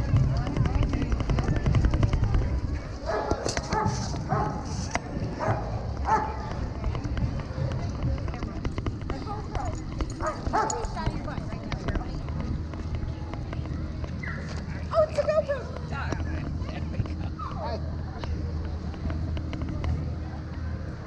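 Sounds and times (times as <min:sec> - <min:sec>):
crowd chatter: 0:00.0 - 0:21.0
steady low rumble: 0:00.0 - 0:21.0
dogs barking and yipping: 0:05.4 - 0:06.5, 0:09.1 - 0:11.2.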